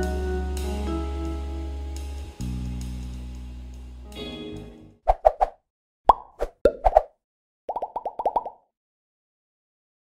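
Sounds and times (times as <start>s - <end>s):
cartoon plop pops rising in pitch: 6.1s - 7.1s, 7.7s - 8.6s.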